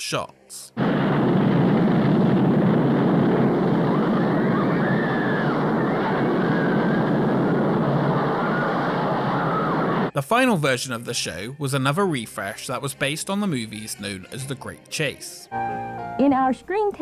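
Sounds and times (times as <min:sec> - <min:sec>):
loud rushing roar: 0:00.8 - 0:10.1.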